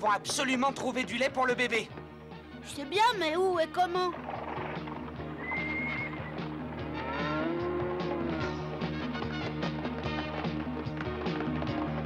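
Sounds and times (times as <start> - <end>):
clatter of hoofbeats: 3.7 - 12.0
dramatic cartoon music: 4.8 - 9.8
animal cries: 5.4 - 8.6.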